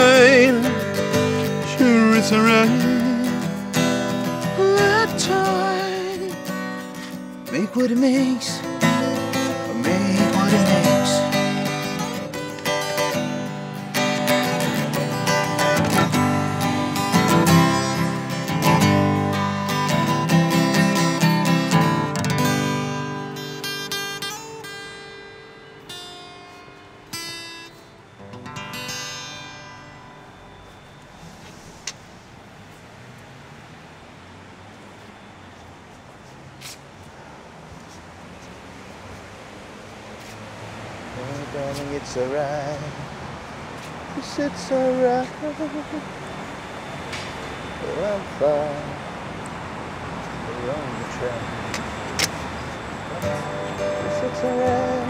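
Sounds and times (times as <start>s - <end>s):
acoustic guitar strumming: 0.0s - 32.6s, 40.7s - 55.0s.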